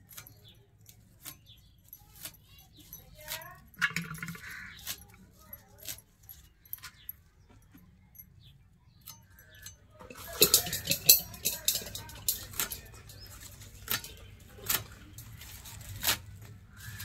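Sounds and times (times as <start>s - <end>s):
stems cut against a blade: 0.0s - 3.7s, 4.4s - 6.1s, 10.2s - 17.0s
bangles clinking: 0.0s - 17.0s.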